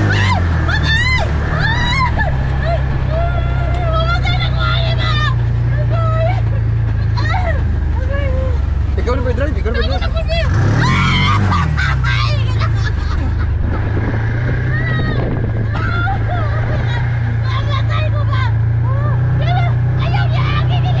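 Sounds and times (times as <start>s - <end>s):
woman shrieking and calling out: 0.0s - 6.4s, 10.3s - 12.6s
vehicle engine revving: 0.0s - 21.0s.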